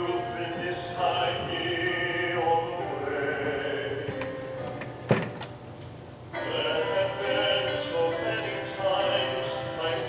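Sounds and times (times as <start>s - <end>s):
christian song over loudspeakers: 0.0s - 5.5s, 6.3s - 10.0s.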